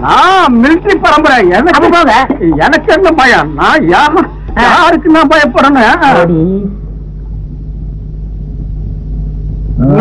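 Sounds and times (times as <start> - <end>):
old soundtrack hum and rumble: 0.0 - 10.0.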